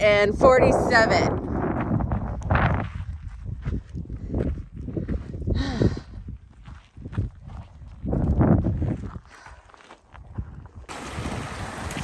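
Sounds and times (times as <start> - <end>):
footsteps crunching on gravel: 1.7 - 5.4, 6.4 - 10.8.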